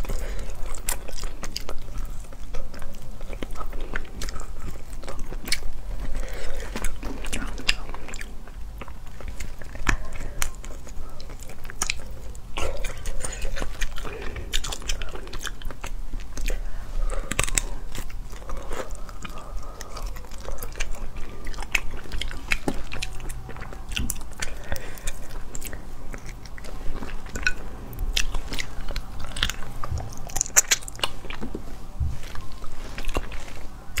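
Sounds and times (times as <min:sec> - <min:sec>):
chewing and crunching: 0:00.0 - 0:34.0.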